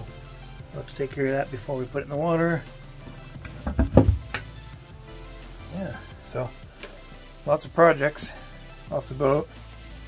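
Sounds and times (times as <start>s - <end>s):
wooden hatch thuds: 3.4s - 4.5s.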